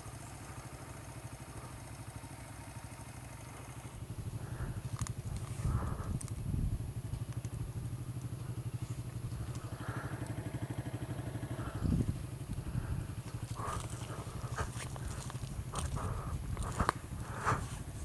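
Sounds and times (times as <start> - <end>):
dirt bike engine at low revs: 0.0 - 18.0
wheels rolling on gravel: 3.7 - 18.0.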